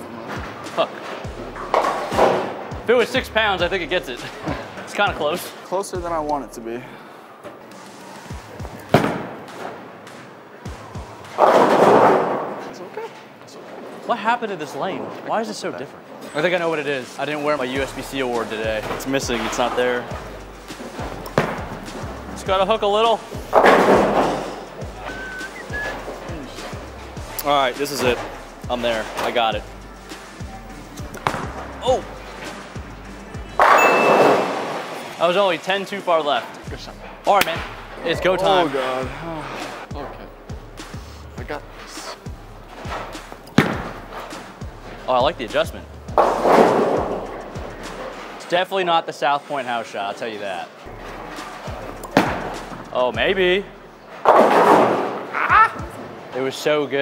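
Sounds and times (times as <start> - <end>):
background music with steady beat: 0.0 - 12.5, 17.6 - 35.3, 35.9 - 48.4, 50.8 - 56.2
bowling ball crashing into pins: 1.5 - 2.7, 8.9 - 9.8, 11.2 - 12.6, 21.0 - 22.1, 23.5 - 24.7, 31.1 - 31.6, 33.6 - 35.1, 43.6 - 44.4, 46.2 - 48.3, 51.0 - 52.8, 54.2 - 55.3
bowling ball landing thud: 8.8 - 9.8, 21.3 - 22.1, 23.5 - 24.6, 31.1 - 31.6, 33.6 - 35.0, 43.5 - 44.3, 52.1 - 52.7.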